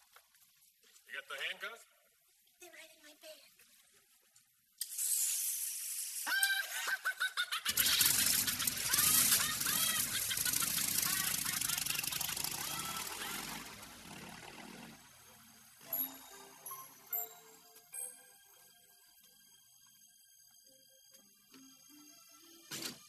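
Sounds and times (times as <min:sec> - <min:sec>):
motorcycle engine running: 0:08.1 - 0:15.1.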